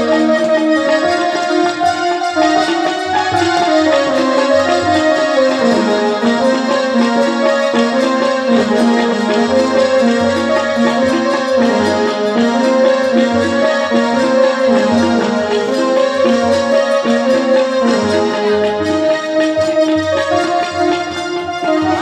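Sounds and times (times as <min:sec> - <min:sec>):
electronic keyboard melody: 0:00.0 - 0:22.0.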